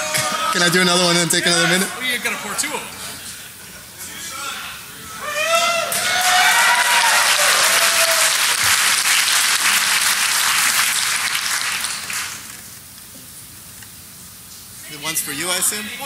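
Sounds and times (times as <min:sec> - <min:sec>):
audience applauding and cheering: 0:05.2 - 0:12.7.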